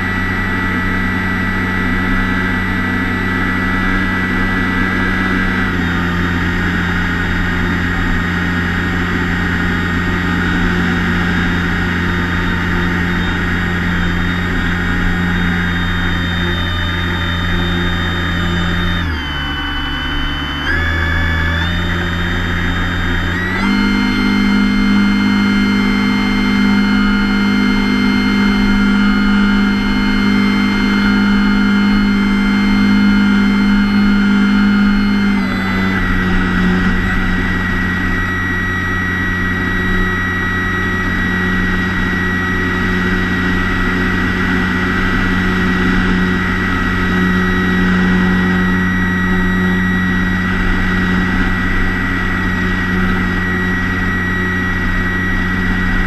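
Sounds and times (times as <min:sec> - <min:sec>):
electric motor and propeller whine: 0:00.0 - 0:56.0.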